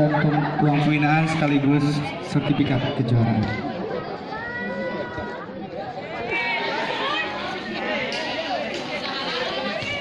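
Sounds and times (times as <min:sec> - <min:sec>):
chatter of voices: 0:00.0 - 0:10.0.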